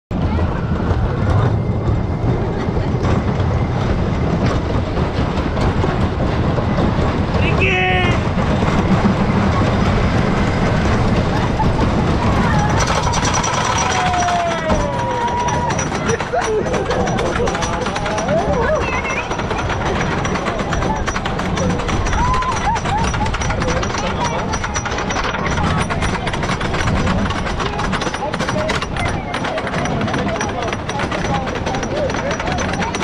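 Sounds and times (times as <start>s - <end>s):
roller coaster rumbling on track: 0.1s - 33.0s.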